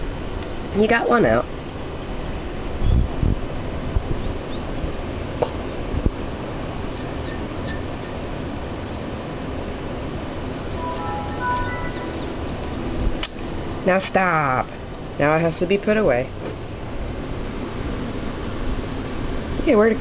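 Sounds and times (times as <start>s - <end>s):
faint pitched tones: 10.7s - 13.1s.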